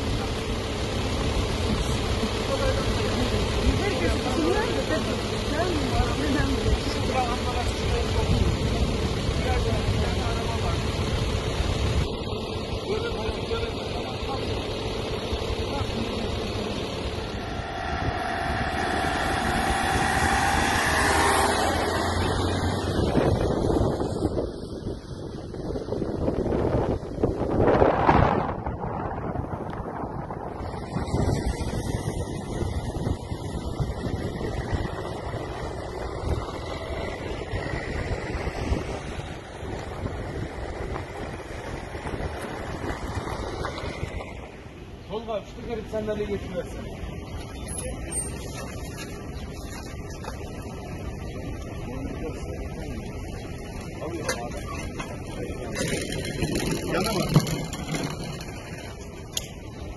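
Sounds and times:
vehicle engine noise: 0.0s - 59.9s
indistinct voices talking: 12.6s - 24.2s
vehicle passing by: 15.7s - 24.4s
loud rushing noise: 16.6s - 24.0s.

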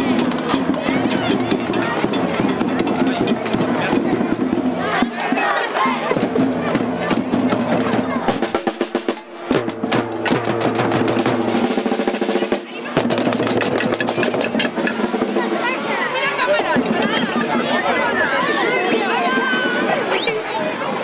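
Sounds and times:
children beating hand drums: 0.0s - 20.2s
crowd chatter: 0.0s - 21.0s.

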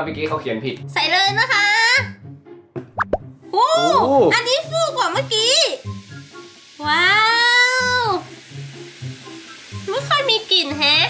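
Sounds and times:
bath ball fizzing: 3.0s - 11.0s.

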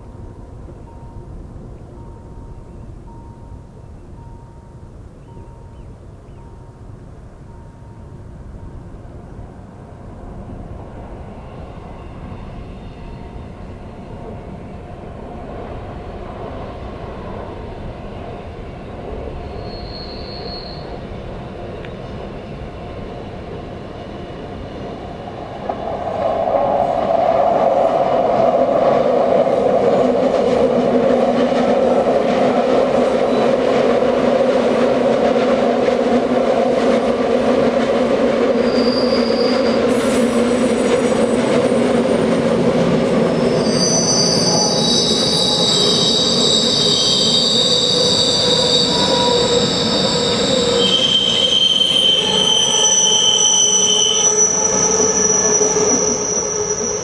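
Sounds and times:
electric train rumbling past: 0.0s - 57.0s
high wheel squeal: 19.4s - 21.0s, 38.6s - 41.4s, 43.2s - 57.0s.

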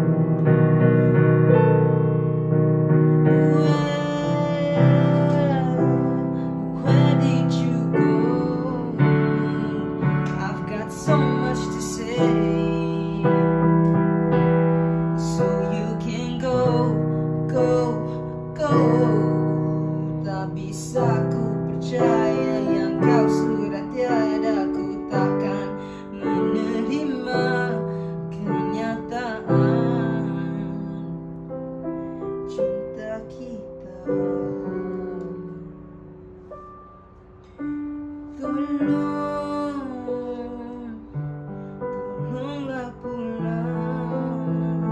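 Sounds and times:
digital piano playing pop ballad: 0.0s - 44.9s.

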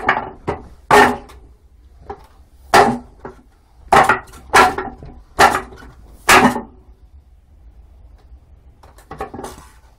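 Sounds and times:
wooden knocks on wooden dummy: 0.0s - 1.4s.

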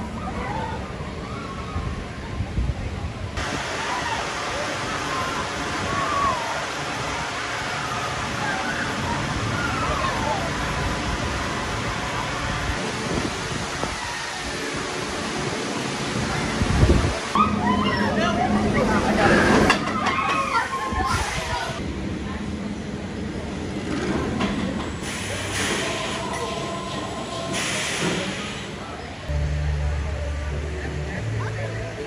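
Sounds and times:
roller coaster rushing roar: 0.0s - 32.0s.

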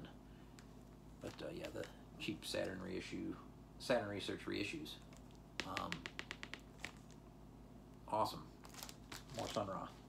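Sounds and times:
plastic sleeve ticks and crinkles: 0.6s - 2.9s, 5.0s - 7.2s, 8.6s - 9.8s.

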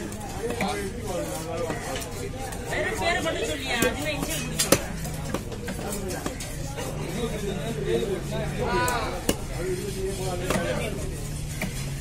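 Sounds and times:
market crowd voices: 0.0s - 12.0s.

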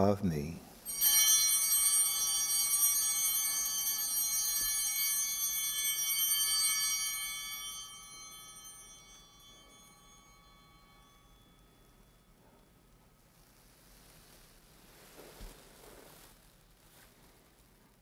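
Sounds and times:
altar bells ringing: 0.7s - 13.4s.

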